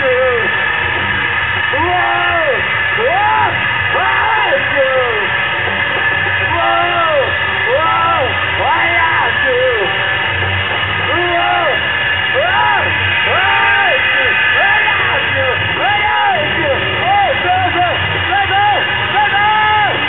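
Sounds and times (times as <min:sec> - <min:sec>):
amplified guitar noise: 0:00.0 - 0:20.0
rock band drums: 0:00.0 - 0:20.0.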